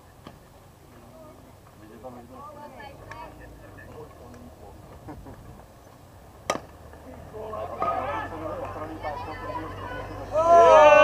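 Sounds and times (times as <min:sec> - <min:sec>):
voices calling out: 0:00.0 - 0:11.0
bat hitting ball: 0:06.4 - 0:06.8.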